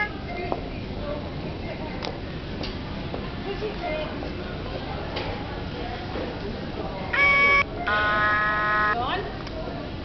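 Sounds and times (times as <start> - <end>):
toy playing buzzy electronic notes: 7.2 - 9.0.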